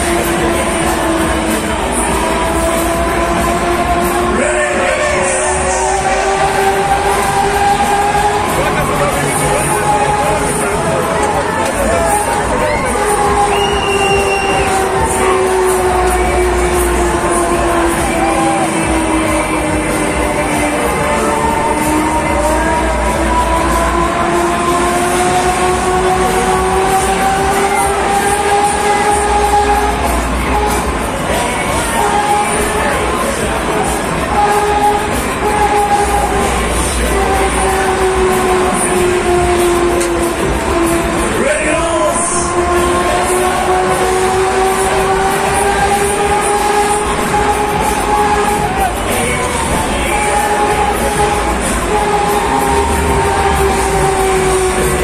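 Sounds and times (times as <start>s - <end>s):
droning whine rising in pitch: 0.0s - 55.0s
fairground ride mechanical rumble: 0.0s - 55.0s
fairground ride music: 0.0s - 55.0s.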